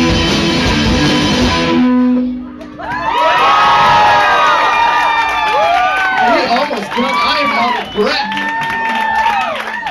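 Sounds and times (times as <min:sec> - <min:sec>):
audience cheering and whooping: 0:02.7 - 0:09.9.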